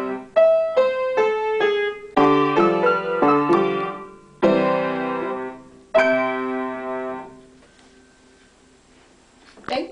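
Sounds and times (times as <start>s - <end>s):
piano chord ringing: 0.0s - 8.4s.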